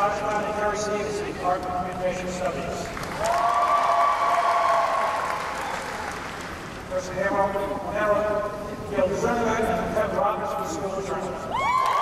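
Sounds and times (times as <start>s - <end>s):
audience applauding: 2.9s - 6.8s.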